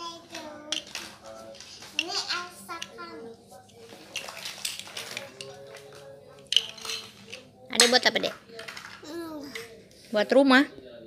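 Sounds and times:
plastic toys clattering: 0.0s - 9.9s
faint music: 0.0s - 11.0s.

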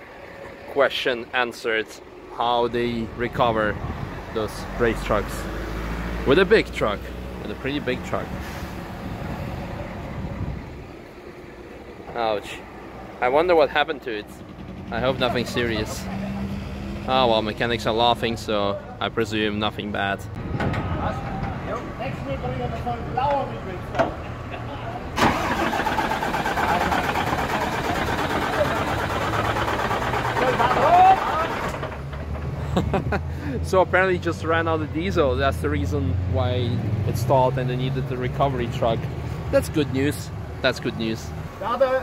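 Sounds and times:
diesel truck engine rumbling: 0.0s - 42.0s
diesel engine turning over: 25.1s - 33.4s.

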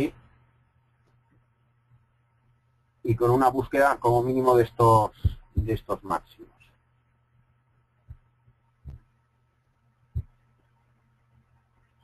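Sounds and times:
low steady hum: 0.0s - 12.0s
dull thumps: 5.2s - 5.9s, 8.1s - 9.2s, 10.1s - 10.4s.

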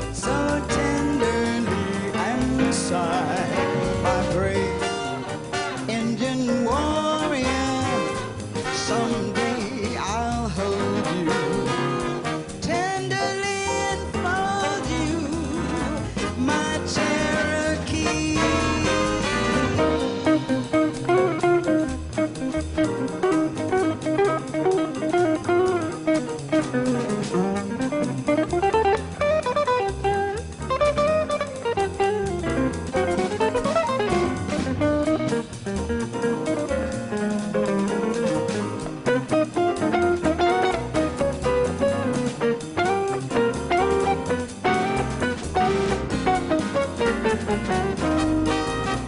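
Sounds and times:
double bass: 0.0s - 49.0s
jazz electric guitar solo: 0.0s - 49.0s
swinging drum kit: 0.0s - 49.0s.

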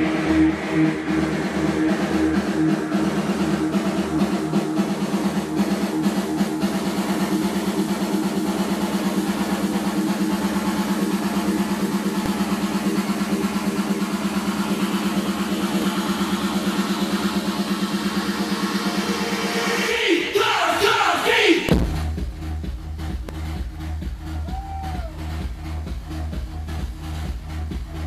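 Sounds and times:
pulsing low synth riff: 0.0s - 19.8s, 21.7s - 28.0s
electro house music: 0.0s - 28.0s.

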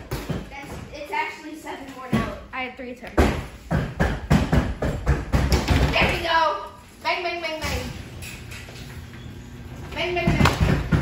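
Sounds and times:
small basketballs thudding: 0.0s - 1.0s, 3.1s - 6.3s, 10.0s - 11.0s.

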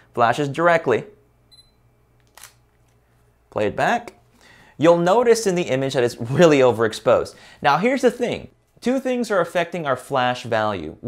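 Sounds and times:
camera focus beep: 1.5s - 1.8s
faint camera shutter click: 2.2s - 2.6s.

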